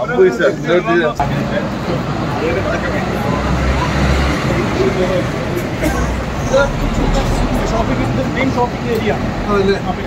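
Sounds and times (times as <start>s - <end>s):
street noise: 0.0s - 10.0s
voices of passers-by: 0.0s - 10.0s.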